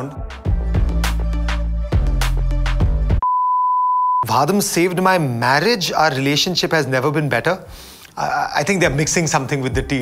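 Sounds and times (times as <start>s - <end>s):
high test-card beep: 3.2s - 4.2s.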